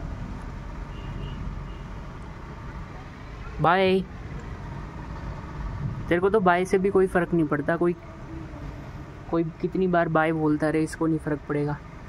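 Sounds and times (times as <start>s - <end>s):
low outdoor rumble: 1.5s - 12.0s.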